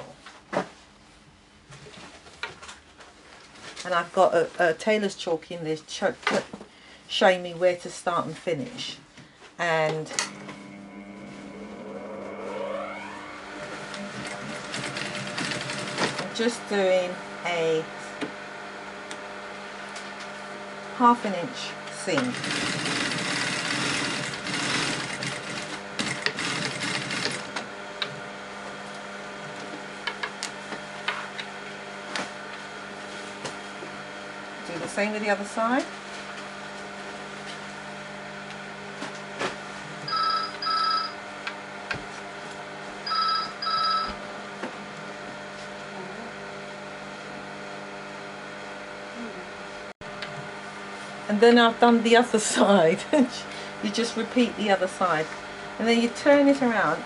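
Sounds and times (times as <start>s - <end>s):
steady low hum: 8.0s - 26.2s
electric sewing machine running: 10.1s - 17.1s, 21.4s - 28.6s, 40.1s - 41.2s, 43.0s - 44.2s
telephone ringing: 40.1s - 41.2s, 43.0s - 44.2s.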